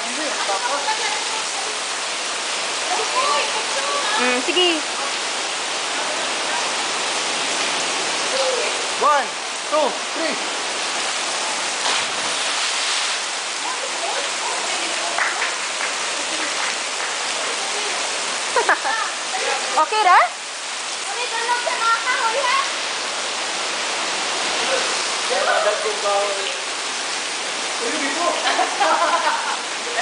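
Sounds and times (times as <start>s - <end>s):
water falling into rock pool: 0.0s - 30.0s
splash of person jumping in: 11.8s - 13.2s.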